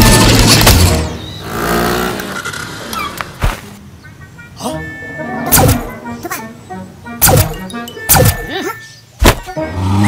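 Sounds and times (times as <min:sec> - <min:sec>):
cartoon scooter engine: 0:00.0 - 0:03.2.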